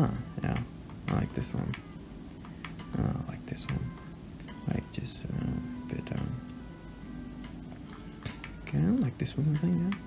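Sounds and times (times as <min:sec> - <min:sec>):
faint steady tones: 0:00.0 - 0:10.0.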